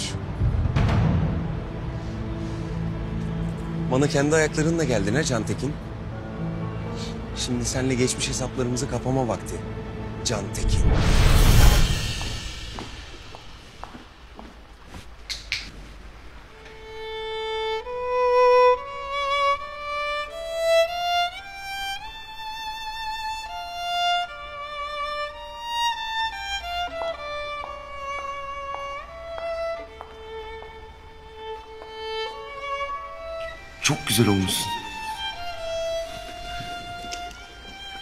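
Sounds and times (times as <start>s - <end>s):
solo violin melody: 16.4s - 38.0s.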